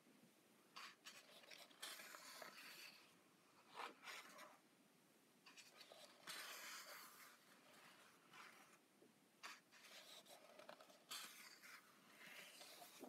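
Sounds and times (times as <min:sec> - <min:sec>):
paper pages rustling: 0:09.4 - 0:13.0.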